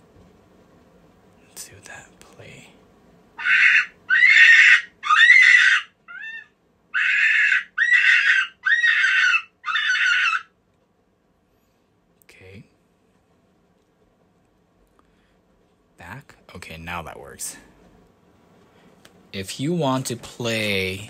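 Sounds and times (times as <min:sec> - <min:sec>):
rabbit distress squeals: 0:03.4 - 0:10.5.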